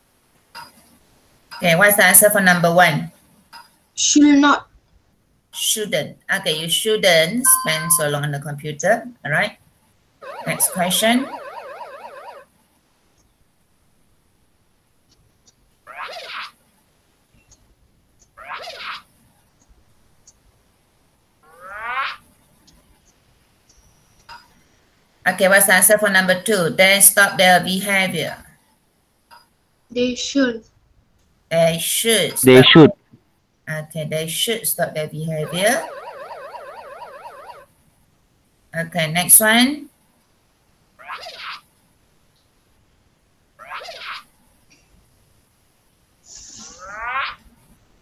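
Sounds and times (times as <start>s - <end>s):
warbling electronic game tone: 7.4s - 8.3s, 10.2s - 12.4s, 35.3s - 37.7s.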